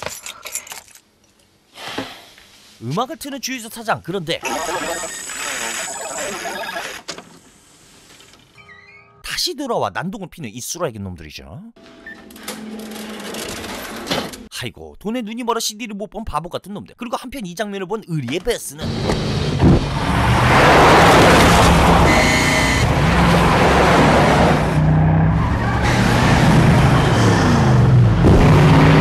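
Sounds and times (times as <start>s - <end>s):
car keys jangling: 0.0s - 1.4s
cash drawer clacking open: 12.2s - 14.5s
cash register clicking and rattling: 12.2s - 14.5s.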